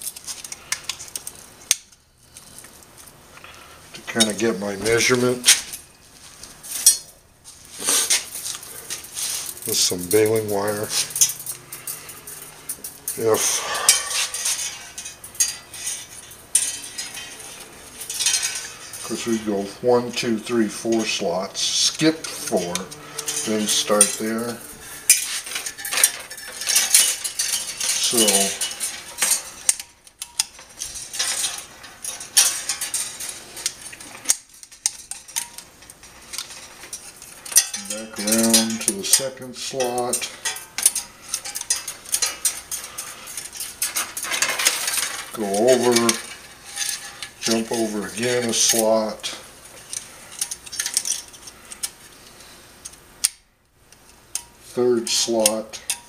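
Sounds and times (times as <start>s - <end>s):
faint steady hum: 0.0s - 56.0s
wire scraping against metal: 0.0s - 56.0s.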